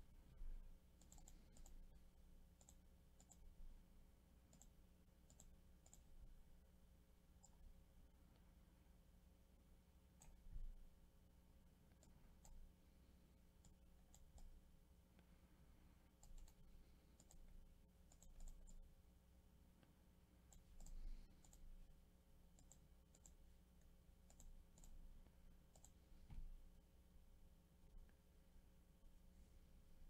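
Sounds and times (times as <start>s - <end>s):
low electrical hum: 0.0s - 30.0s
computer mouse clicks: 1.0s - 3.6s, 4.5s - 6.2s, 7.4s - 7.7s, 10.2s - 10.7s, 11.9s - 12.7s, 13.6s - 14.6s, 16.1s - 18.9s, 20.5s - 21.7s, 22.5s - 26.5s.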